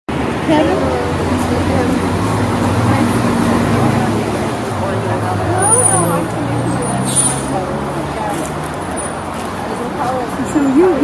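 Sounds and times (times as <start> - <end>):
murmur of people talking: 0.1 - 11.0
road traffic: 0.1 - 11.0.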